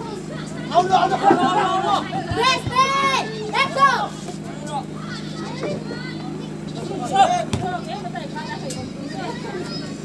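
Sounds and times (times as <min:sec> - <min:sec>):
people shouting and calling out: 0:00.0 - 0:10.0.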